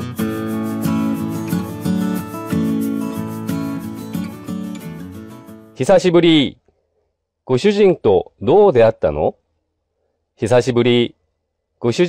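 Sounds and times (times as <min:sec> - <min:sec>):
strummed acoustic guitar music: 0:00.0 - 0:05.8.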